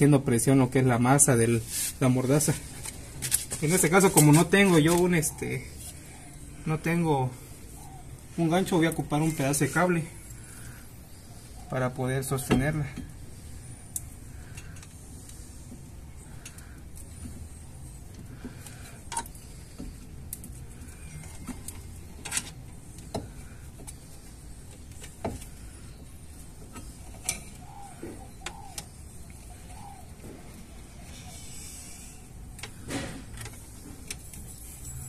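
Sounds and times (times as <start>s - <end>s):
low background hum: 0.0s - 35.0s.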